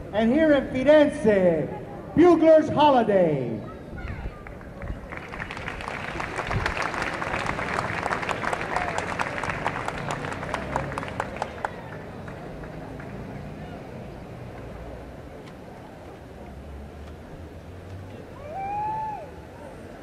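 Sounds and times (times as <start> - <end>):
crowd voices: 0.0 - 20.0
audience applause: 4.4 - 13.4.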